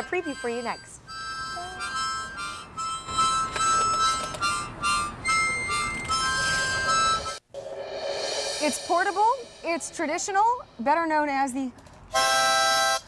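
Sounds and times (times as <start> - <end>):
harmonicas playing a tune: 0.0 - 7.4.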